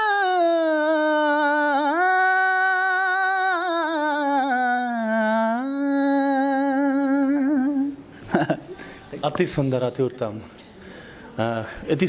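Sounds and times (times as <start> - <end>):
man singing unaccompanied: 0.0 - 8.0.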